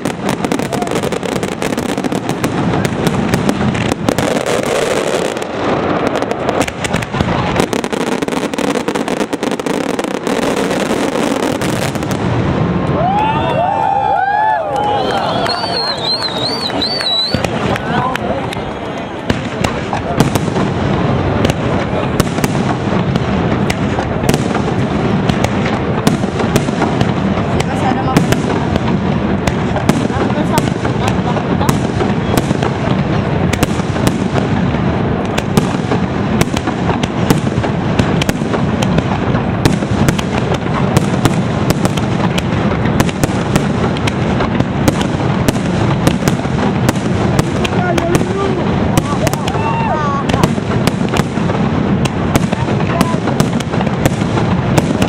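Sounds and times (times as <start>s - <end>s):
fireworks bursting and crackling: 0.0s - 55.0s.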